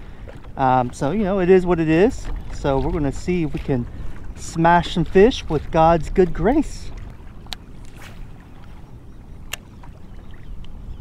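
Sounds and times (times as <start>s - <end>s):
low wind rumble: 0.0s - 11.0s
water lapping against kayak hull: 0.0s - 11.0s.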